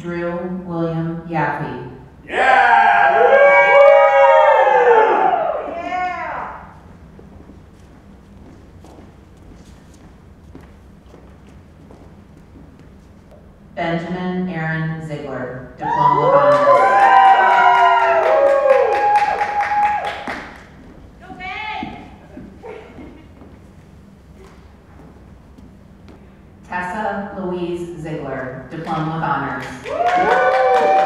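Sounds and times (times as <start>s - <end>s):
voices cheering and whooping: 2.3s - 6.7s, 15.8s - 20.4s, 29.8s - 31.0s
hand clapping: 17.7s - 20.8s, 29.6s - 31.0s.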